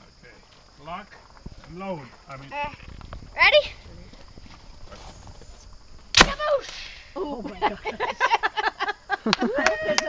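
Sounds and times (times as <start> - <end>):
wind rumble on microphone: 2.5 - 6.2
microphone handling: 2.6 - 6.2.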